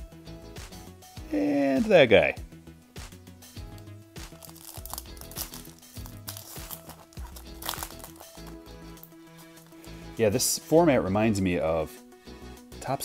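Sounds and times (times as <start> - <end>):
background music: 0.0 - 13.0
foil wrapper crinkling and tearing: 4.3 - 8.6.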